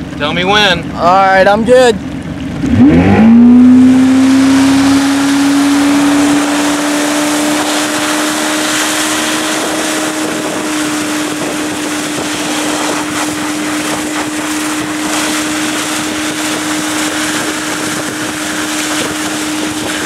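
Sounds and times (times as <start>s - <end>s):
boat engine at high revs: 0.0s - 20.0s.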